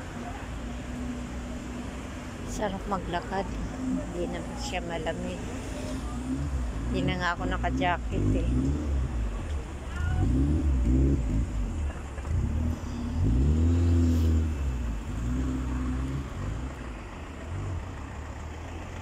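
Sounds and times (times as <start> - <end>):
car engine revving: 0.0 - 19.0
traffic low rumble: 0.0 - 19.0.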